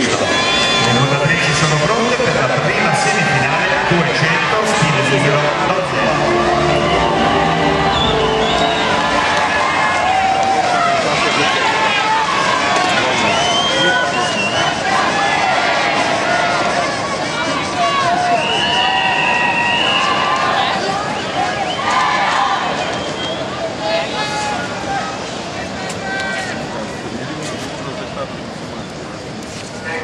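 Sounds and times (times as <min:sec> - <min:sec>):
high held call: 0:00.0 - 0:20.2
crowd calling out and chattering: 0:00.0 - 0:30.0.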